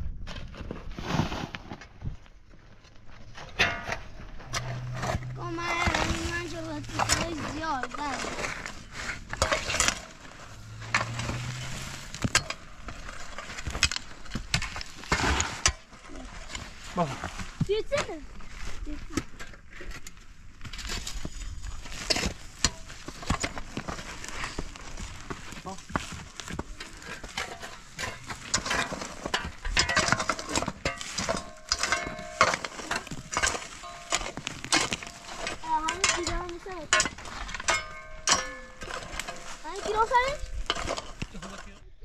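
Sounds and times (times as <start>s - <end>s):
shovel scraping stony soil: 0.3s - 1.9s, 3.2s - 41.8s
gravel rattling and clinking: 1.7s - 42.0s.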